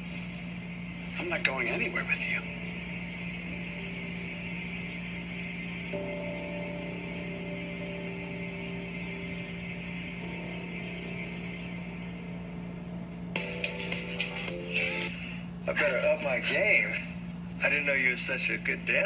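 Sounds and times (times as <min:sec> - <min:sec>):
hum and hiss: 0:00.0 - 0:19.0
dramatic underscore music: 0:00.5 - 0:15.7.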